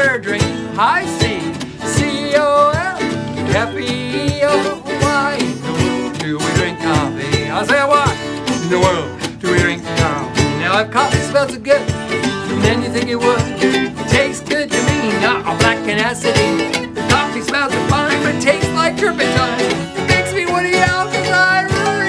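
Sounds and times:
acoustic guitar strumming: 0:00.0 - 0:22.0
man singing: 0:00.0 - 0:22.0
ukulele strumming: 0:00.0 - 0:22.0.

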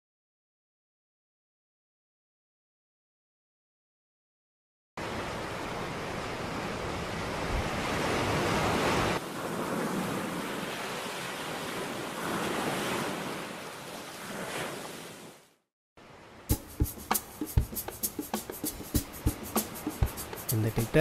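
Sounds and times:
waves washing onto beach: 0:05.0 - 0:15.4.

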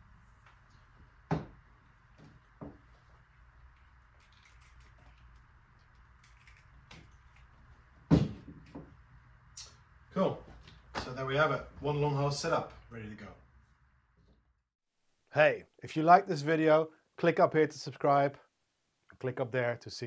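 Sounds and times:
hoses and fittings knocking on table: 0:01.3 - 0:01.6, 0:02.2 - 0:02.8, 0:08.1 - 0:08.9.

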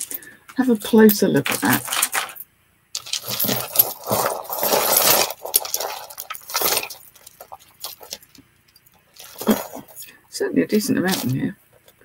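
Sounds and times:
jewellery clinking and rattling: 0:00.0 - 0:10.0, 0:10.8 - 0:12.0.

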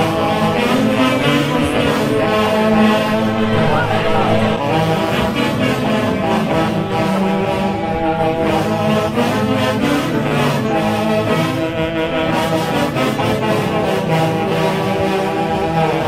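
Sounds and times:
wind and string band playing: 0:00.0 - 0:16.0.

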